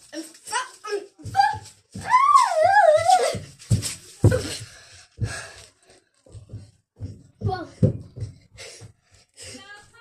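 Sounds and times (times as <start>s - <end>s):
running footsteps: 0.0s - 10.0s
heavy thump: 6.4s - 8.5s.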